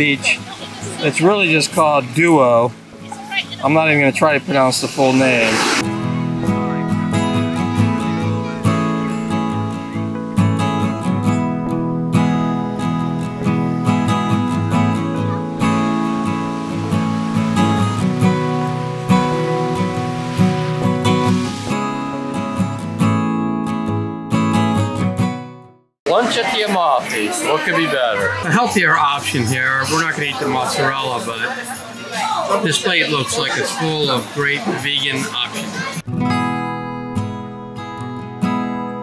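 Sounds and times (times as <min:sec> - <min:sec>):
acoustic guitar background music: 0:00.0 - 0:04.8, 0:05.8 - 0:39.0.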